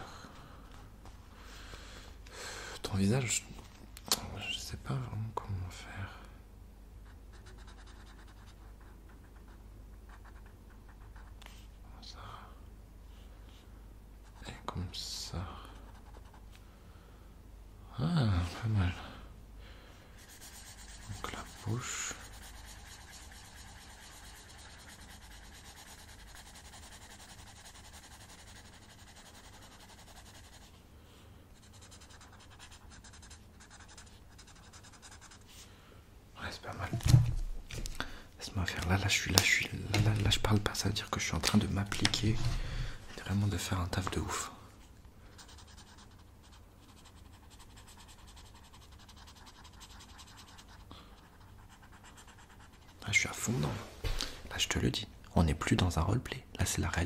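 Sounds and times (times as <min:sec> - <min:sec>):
pencil scratching on paper: 0:07.0 - 0:11.6, 0:15.8 - 0:16.4, 0:20.2 - 0:30.8, 0:31.5 - 0:35.5, 0:45.3 - 0:53.3.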